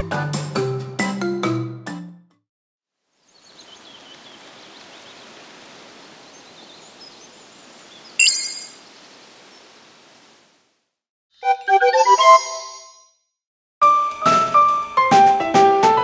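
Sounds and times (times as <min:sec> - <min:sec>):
faint bird chirps: 0:03.2 - 0:05.4.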